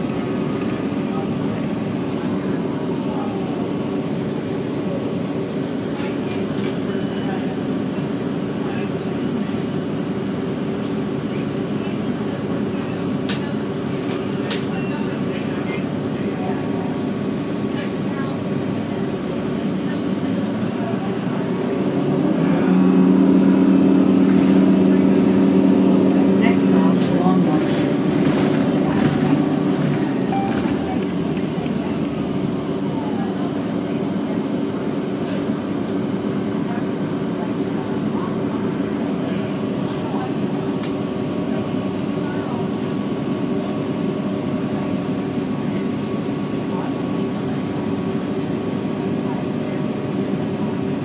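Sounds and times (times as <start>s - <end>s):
bus engine humming: 0.0s - 51.0s.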